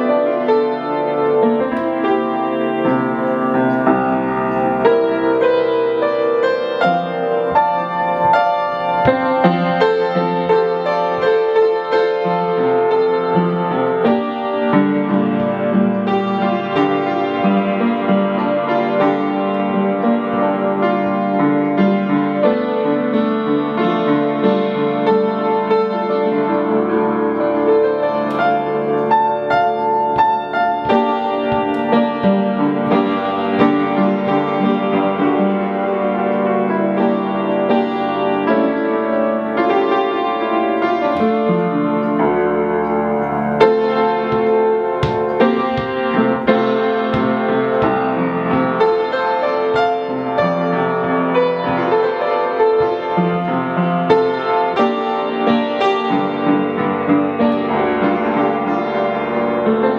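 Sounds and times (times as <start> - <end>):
blues piano: 0.0 - 59.9.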